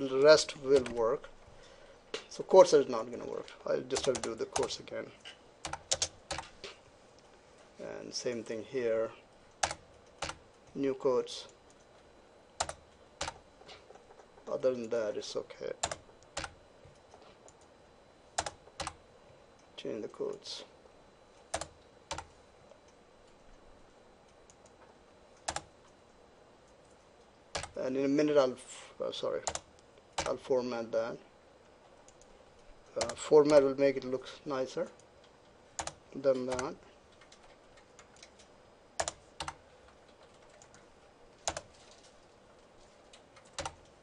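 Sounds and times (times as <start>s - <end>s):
computer keyboard keystrokes: 0.7s - 1.0s, 4.0s - 4.7s, 5.6s - 6.5s, 9.6s - 10.4s, 12.6s - 14.3s, 15.8s - 17.6s, 18.4s - 19.0s, 21.5s - 22.3s, 25.4s - 25.7s, 27.5s - 27.8s, 29.4s - 30.4s, 35.8s - 40.8s, 41.4s - 41.9s, 43.1s - 43.9s.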